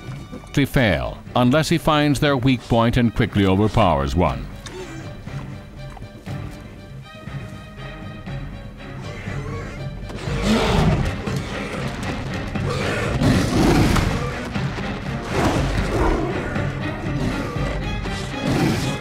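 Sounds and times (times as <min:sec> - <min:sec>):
dramatic film score: 0:00.0 - 0:19.0.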